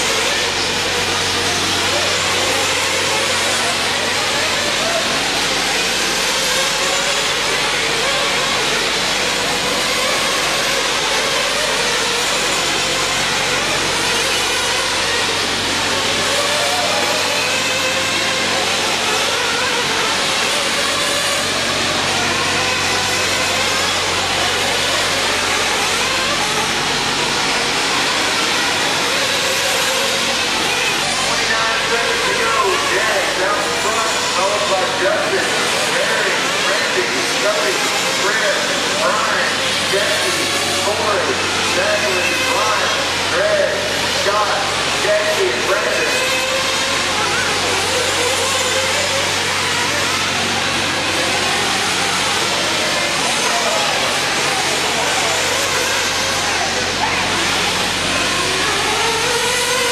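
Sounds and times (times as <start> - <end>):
crowd voices echoing: 0.0 - 59.9
small engines buzzing and revving: 0.0 - 59.9.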